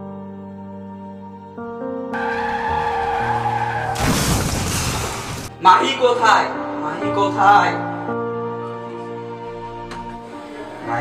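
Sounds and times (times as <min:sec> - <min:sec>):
soft background music: 0:00.0 - 0:11.0
tyres skidding: 0:02.2 - 0:05.5.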